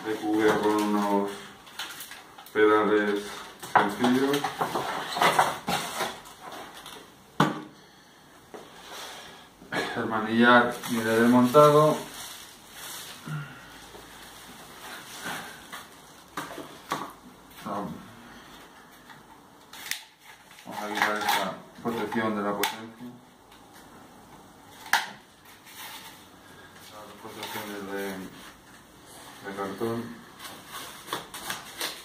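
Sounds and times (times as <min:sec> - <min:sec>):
plastic packaging rustling: 0:00.0 - 0:07.2, 0:10.3 - 0:17.8, 0:24.7 - 0:32.0.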